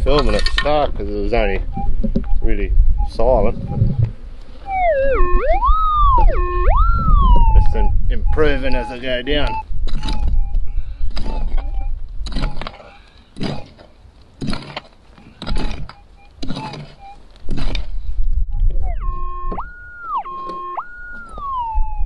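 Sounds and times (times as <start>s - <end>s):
metal detector warbling tone: 1.4s - 12.8s, 15.4s - 17.9s, 18.5s - 22.0s
pick striking stony soil: 11.1s - 18.0s.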